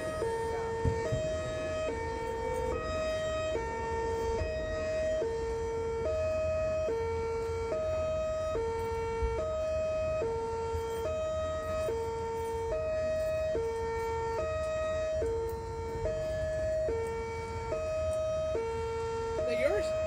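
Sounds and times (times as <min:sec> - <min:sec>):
hi-lo siren tone: 0:00.0 - 0:20.0.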